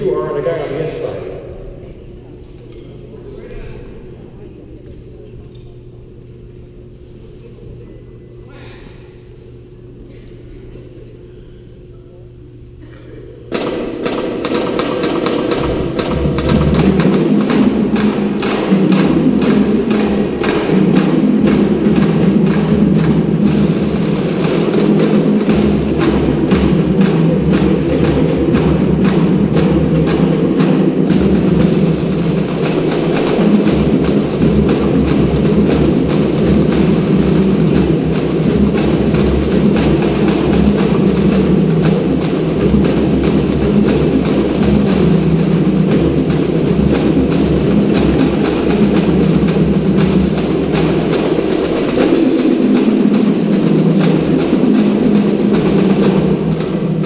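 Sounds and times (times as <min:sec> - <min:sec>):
drums beating: 0:00.0 - 0:07.8, 0:09.1 - 0:57.0.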